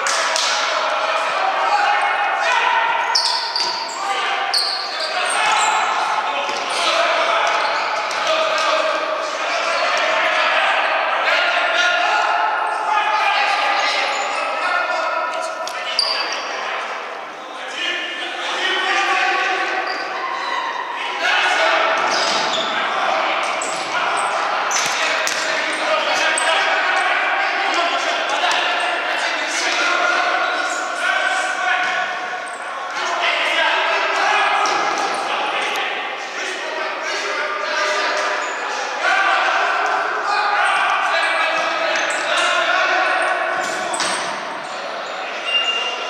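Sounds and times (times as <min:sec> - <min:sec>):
players shouting: 0:00.0 - 0:46.0.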